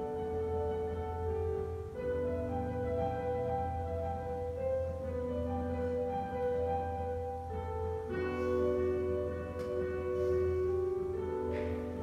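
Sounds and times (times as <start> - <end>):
solo instrumental long held notes: 0.0 - 12.0.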